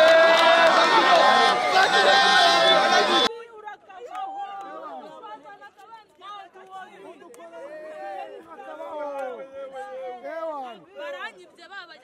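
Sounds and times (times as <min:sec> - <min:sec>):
loud crowd of fans: 0:00.0 - 0:05.8
people talking close by: 0:00.7 - 0:12.0.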